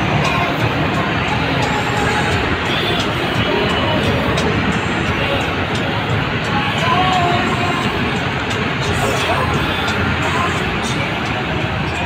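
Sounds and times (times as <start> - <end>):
music from portable speaker: 0.0 - 12.0
traffic: 0.0 - 12.0.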